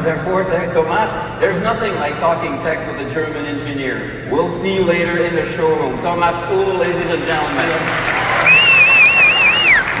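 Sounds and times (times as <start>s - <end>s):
audience applauding: 7.0s - 10.0s
high wavering whistle: 8.5s - 10.0s.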